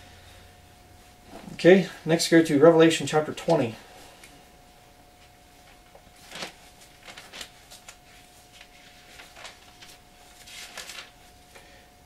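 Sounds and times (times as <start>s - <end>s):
book pages turning: 5.6s - 11.2s.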